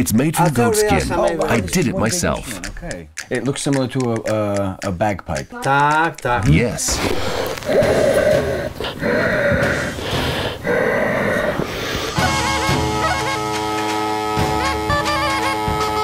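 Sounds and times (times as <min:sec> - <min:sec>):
breathy puffs into blowpipe: 0:06.9 - 0:12.7
bagpipe drone and melody: 0:12.2 - 0:16.0.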